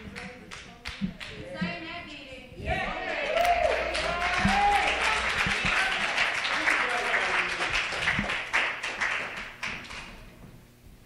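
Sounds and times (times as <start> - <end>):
voices: 0.0 - 8.2
congregation applauding: 3.0 - 10.2.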